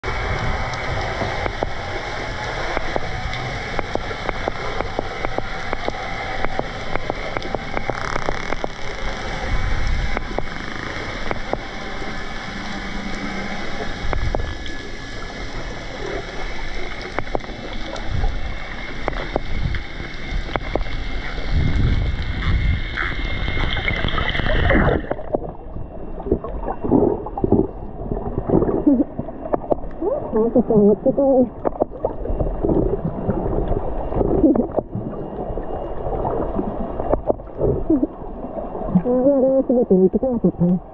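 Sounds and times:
whooshing water movement: 0:00.0 - 0:39.4.

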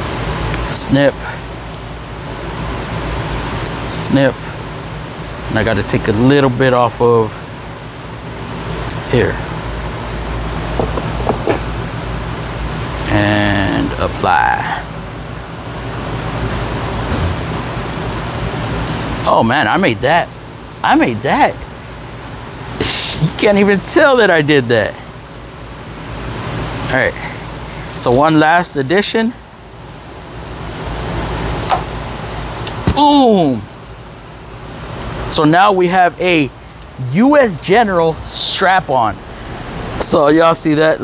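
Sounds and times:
background hiss and hum: 0:00.0 - 0:41.0
noisy shop background: 0:07.3 - 0:35.8.

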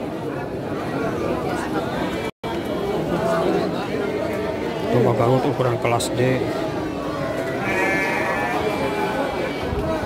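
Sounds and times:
crowd chatter: 0:00.0 - 0:10.0
sheep bleating: 0:07.6 - 0:09.3.

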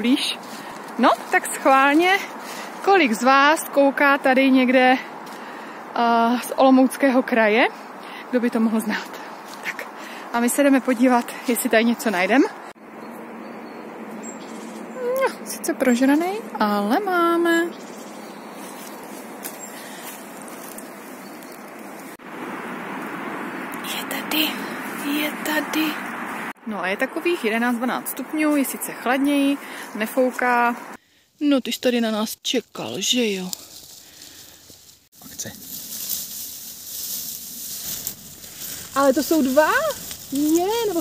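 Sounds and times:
faint rustles: 0:00.0 - 0:02.9, 0:33.1 - 0:41.0
rustling grass and dry leaves: 0:00.0 - 0:41.0.

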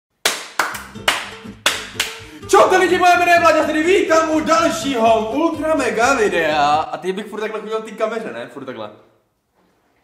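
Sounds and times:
hands clapping: 0:00.2 - 0:02.3.

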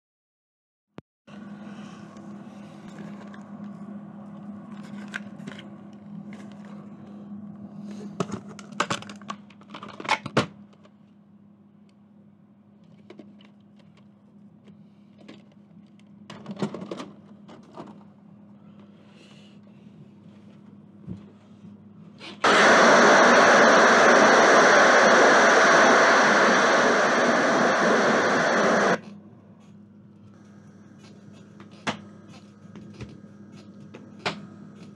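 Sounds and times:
steady low hum: 0:01.3 - 0:09.3, 0:17.3 - 0:34.9
loud television static hiss: 0:22.5 - 0:29.0.

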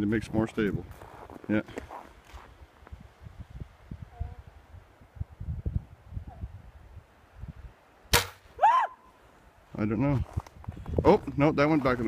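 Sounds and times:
wind buffeting microphone: 0:00.0 - 0:07.8, 0:09.7 - 0:12.0.

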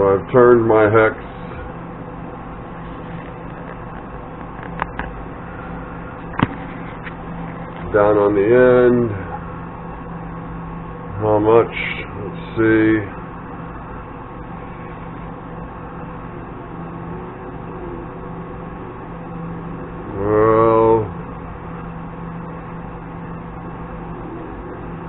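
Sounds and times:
electrical hum of equipment: 0:00.0 - 0:25.0
man humming hmm: 0:20.0 - 0:21.2.

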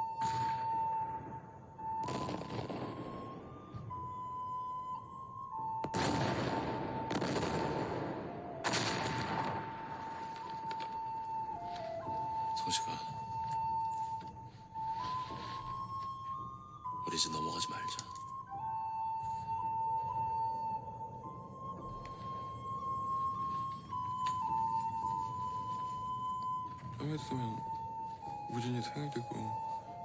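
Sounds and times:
slow flute melody: 0:00.0 - 0:30.0
loud echoing blasts: 0:00.1 - 0:04.3, 0:05.6 - 0:11.6
sharp crackling bursts: 0:01.8 - 0:03.7, 0:05.6 - 0:14.1.

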